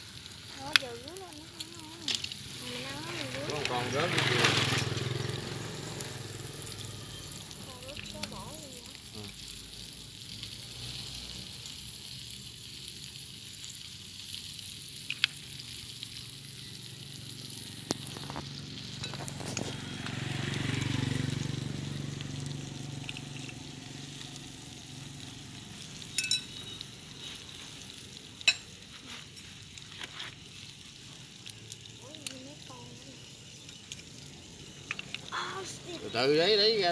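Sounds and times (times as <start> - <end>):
shellfish sizzling on a grill: 0.0 - 36.9
sharp clicks: 34.8 - 35.4.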